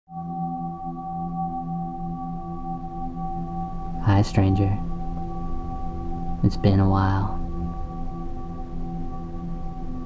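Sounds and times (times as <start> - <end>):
soft ambient drone: 0.1 - 10.0.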